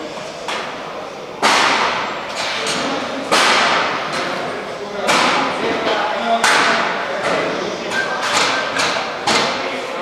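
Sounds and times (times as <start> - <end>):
knocks on metal shelving: 1.4 - 4.3, 5.0 - 5.8.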